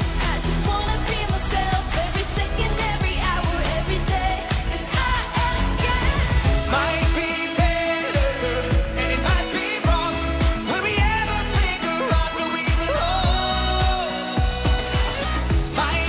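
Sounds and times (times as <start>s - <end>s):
woman singing dance-pop song: 0.0s - 16.0s.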